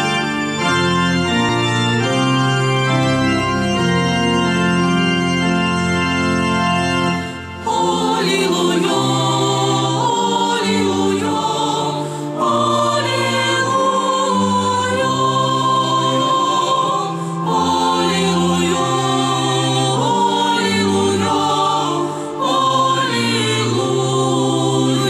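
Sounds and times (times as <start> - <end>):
organ: 0.0 - 25.0
choir singing: 7.1 - 25.0.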